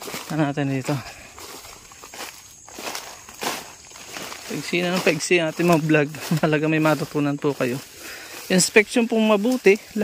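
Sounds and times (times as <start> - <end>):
footsteps through leaf litter: 0.0 - 10.0.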